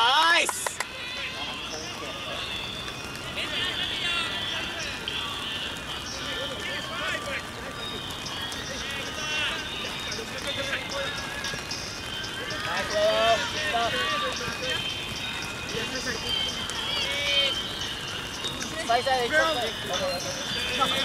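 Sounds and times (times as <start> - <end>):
rain hissing: 0.0 - 21.0
players shouting: 3.2 - 21.0.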